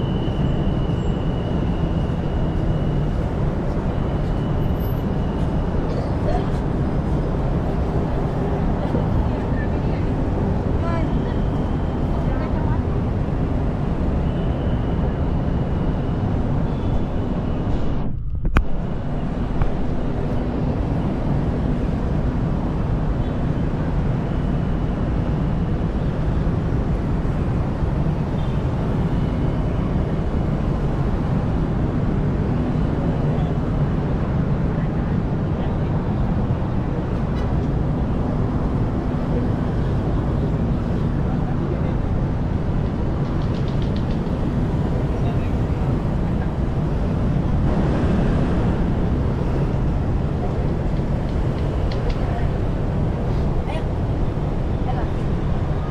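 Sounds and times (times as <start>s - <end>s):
city traffic rumble: 0.0s - 55.9s.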